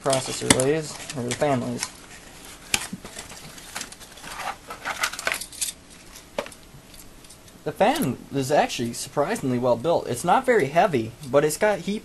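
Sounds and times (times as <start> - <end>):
cardboard rustling and scraping: 0.1 - 5.4.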